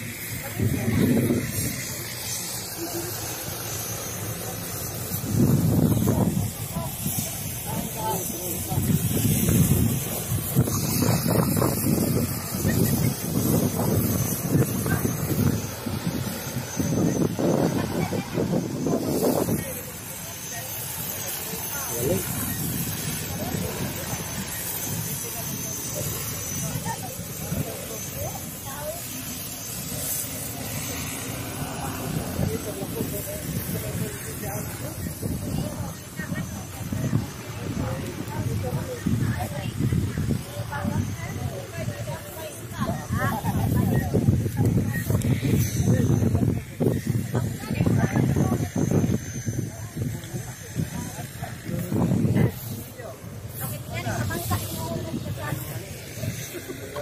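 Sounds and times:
faint indistinct voices: 0.0 - 57.0
steady outdoor hiss: 0.0 - 57.0
wind buffeting microphone: 0.0 - 57.0.

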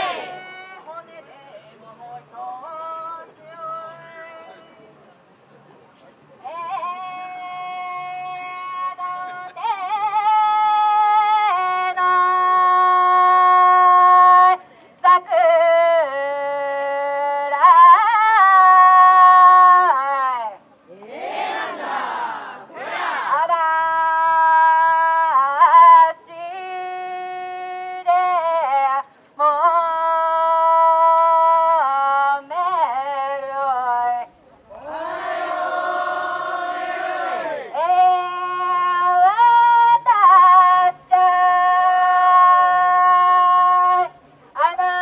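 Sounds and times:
crowd group shouts: 0.0 - 0.6, 34.7 - 37.7
person chanting: 0.0 - 0.9
solo singer holding notes: 0.0 - 0.9.

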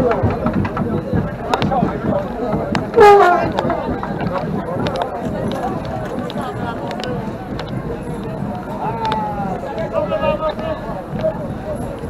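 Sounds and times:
street crowd chatter: 0.0 - 12.0.

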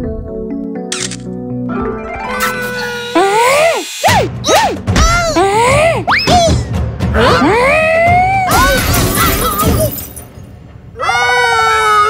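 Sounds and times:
squeaky cartoon swoops: 2.1 - 4.8.

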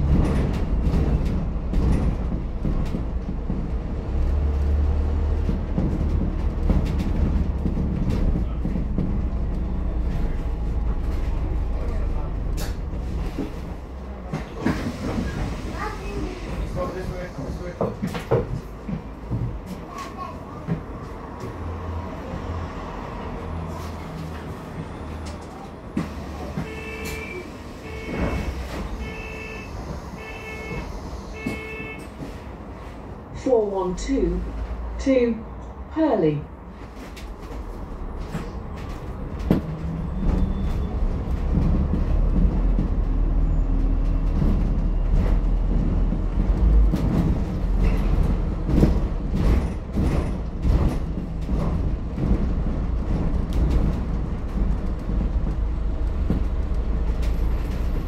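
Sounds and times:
knocks and rattles from bus body: 0.0 - 22.6, 23.6 - 33.4, 36.7 - 58.0
bus drivetrain low rumble: 0.0 - 58.0.

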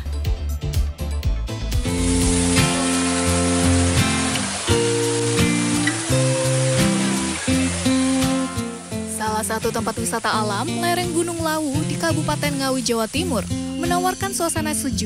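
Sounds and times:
sustained chords music: 1.8 - 9.9.

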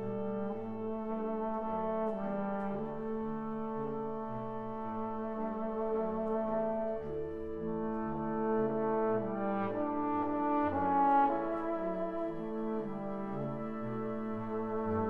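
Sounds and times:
wind band playing: 0.0 - 15.0.

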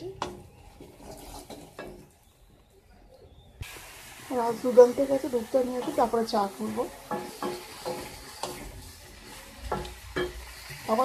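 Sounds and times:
food sizzling in oil: 0.0 - 2.2, 3.6 - 11.0
spatula knocking against pan: 7.1 - 8.7, 9.7 - 10.4.

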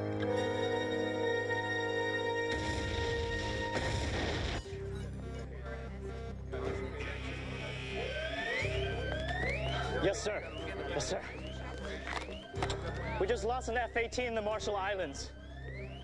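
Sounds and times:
pulsing low synth drone: 0.0 - 13.4.

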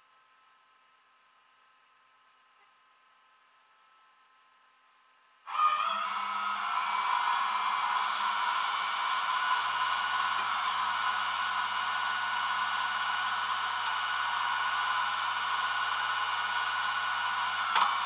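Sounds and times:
winch whining under load: 5.5 - 18.0.

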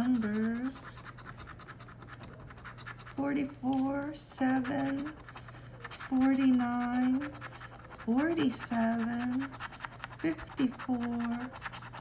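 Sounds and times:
scratch-off ticket scratching: 0.0 - 12.0.

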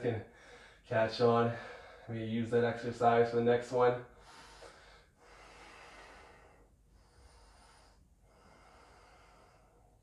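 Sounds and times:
faint slow breathing: 0.3 - 0.9, 1.5 - 2.1, 4.1 - 10.0.

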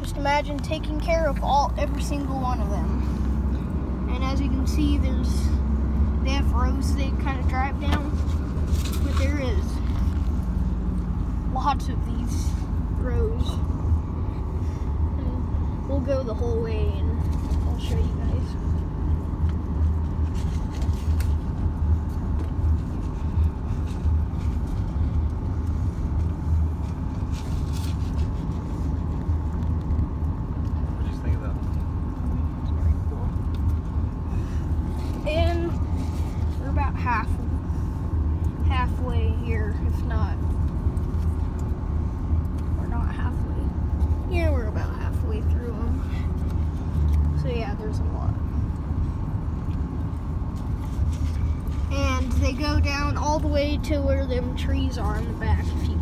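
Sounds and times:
truck engine and tyre rumble: 0.0 - 56.0.

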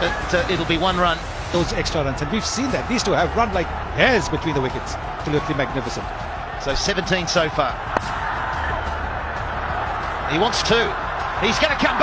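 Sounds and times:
stadium crowd noise: 0.0 - 12.0.

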